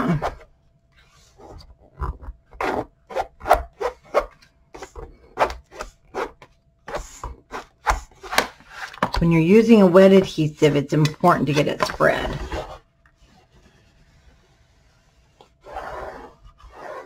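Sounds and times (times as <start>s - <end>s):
plastic spatula scraping cardstock: 1.0s - 9.2s, 11.0s - 17.0s.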